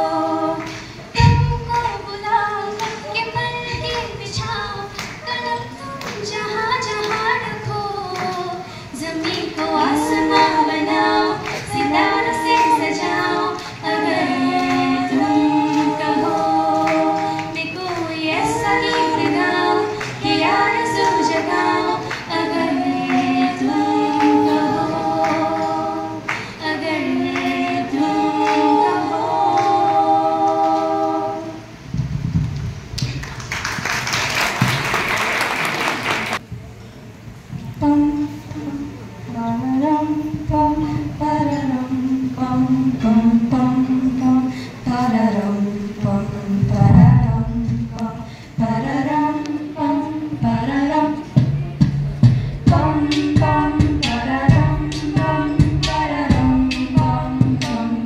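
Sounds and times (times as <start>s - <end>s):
women singing in harmony: 0.0s - 32.0s, 37.8s - 58.0s
applause: 5.0s - 5.3s, 26.3s - 26.6s, 33.0s - 36.4s.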